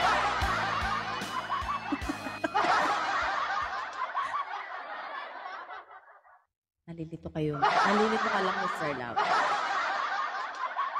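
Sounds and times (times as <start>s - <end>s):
laughter: 0.0s - 6.5s, 7.5s - 10.9s.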